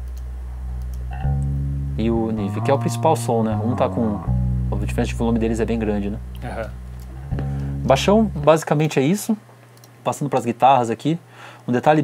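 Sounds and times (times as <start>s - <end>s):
electric bass notes: 0.0s - 8.9s.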